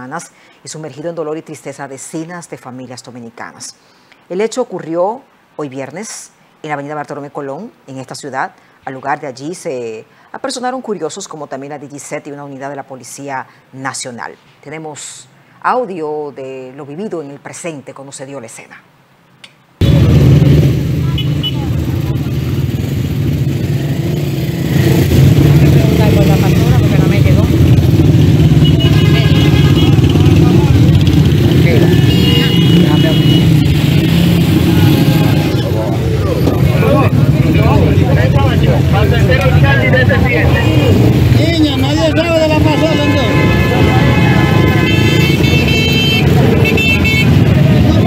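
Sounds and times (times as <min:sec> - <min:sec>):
motorcycle and car engines rumbling: 0:19.8 - 0:48.0
bystanders' voices: 0:20.9 - 0:23.3, 0:24.8 - 0:48.0.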